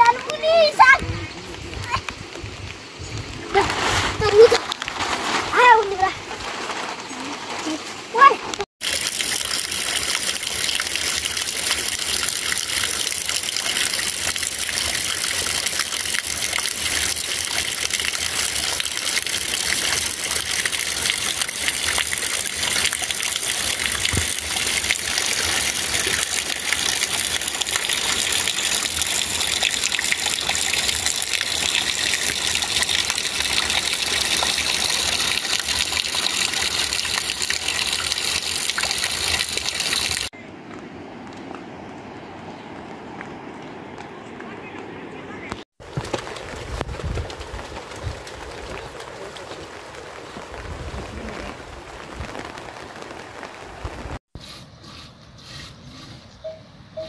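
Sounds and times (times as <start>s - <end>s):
heavy rain falling: 11.2s - 40.3s, 45.4s - 54.2s.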